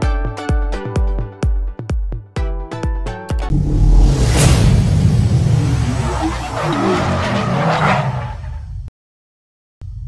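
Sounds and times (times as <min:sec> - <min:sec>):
music sting: 0:03.5 - 0:06.9
rising noise: 0:03.5 - 0:07.4
car rumbling: 0:03.5 - 0:08.9
tyres skidding: 0:04.8 - 0:08.8.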